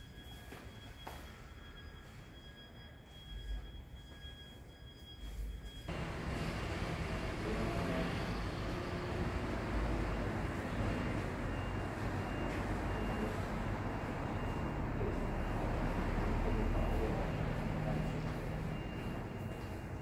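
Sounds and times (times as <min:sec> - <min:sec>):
road traffic noise: 0:05.9 - 0:20.0.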